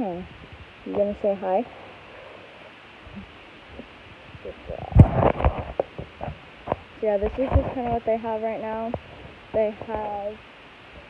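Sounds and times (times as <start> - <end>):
horse muzzle rubbing microphone: 4.4 - 8.2.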